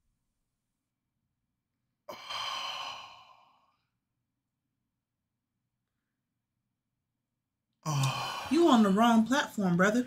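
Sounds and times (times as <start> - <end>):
person sighing: 2.1 - 3.6, 7.8 - 8.5.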